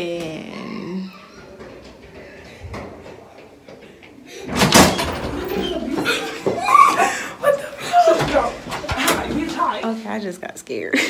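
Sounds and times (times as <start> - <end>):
door bursting open with bang: 4.4 - 6.1.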